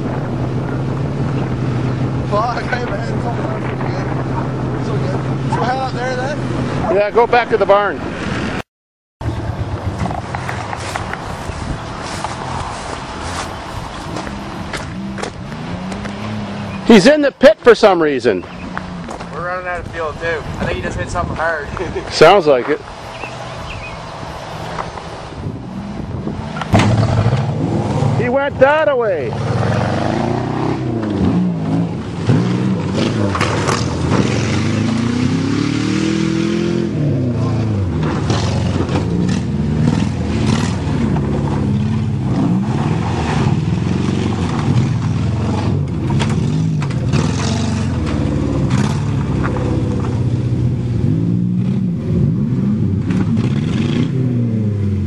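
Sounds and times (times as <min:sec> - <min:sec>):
car engine running: 0:00.0 - 0:08.0.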